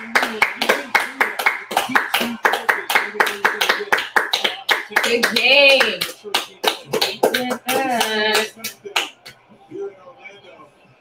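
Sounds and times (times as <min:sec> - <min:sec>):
people clapping hands: 0:00.0 - 0:09.4
tv commentary: 0:00.0 - 0:11.0.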